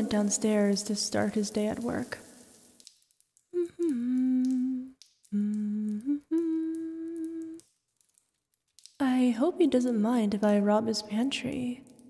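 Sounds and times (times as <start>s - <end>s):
woman humming held notes: 3.6s - 7.6s.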